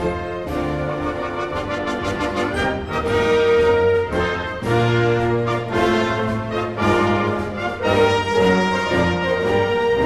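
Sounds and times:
symphony orchestra playing: 0.0 - 10.0
trumpets and trombones: 0.0 - 10.0.

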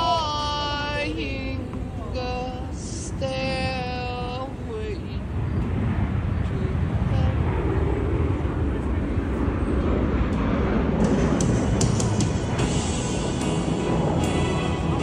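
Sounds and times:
distant engine rumble: 0.0 - 15.0.

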